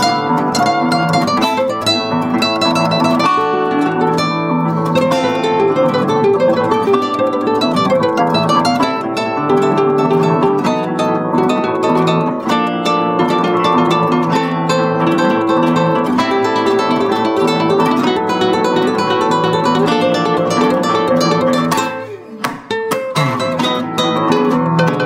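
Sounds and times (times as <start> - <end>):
classical guitar duet: 0.0 - 25.0.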